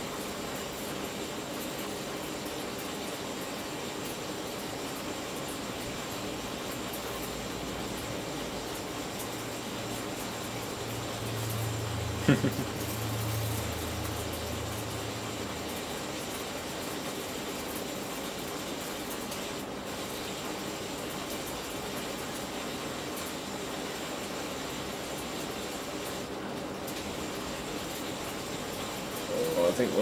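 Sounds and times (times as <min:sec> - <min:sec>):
electric arcing hiss: 0:00.0 - 0:30.0.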